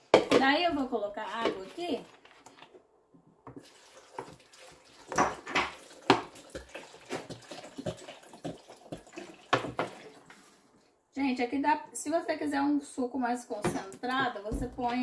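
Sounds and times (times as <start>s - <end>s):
water glugging from plastic bottle: 3.5s - 10.3s.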